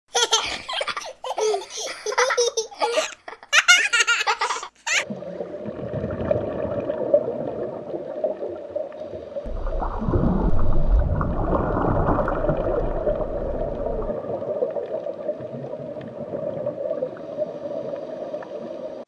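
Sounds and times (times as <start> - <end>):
young child giggling: 0.1 - 5.0
faint bubbling: 5.0 - 19.0
underwater rumble: 5.1 - 19.0.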